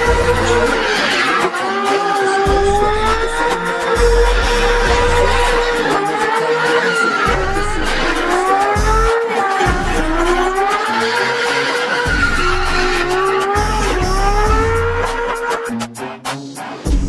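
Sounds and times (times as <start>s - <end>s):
tyre squeal: 0.0s - 15.7s
car engine revving: 0.0s - 17.0s
music with bass beat: 0.0s - 17.0s.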